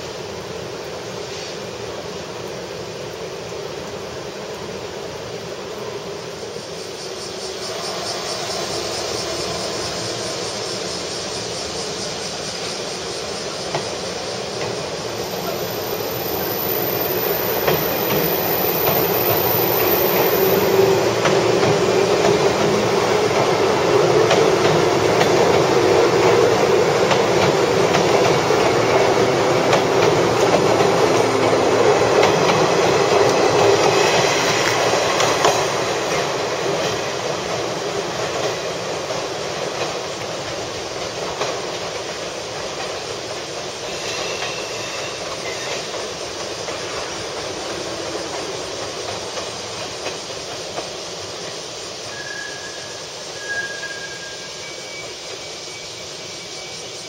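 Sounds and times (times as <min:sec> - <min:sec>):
electric train running past: 0:00.0 - 0:57.0.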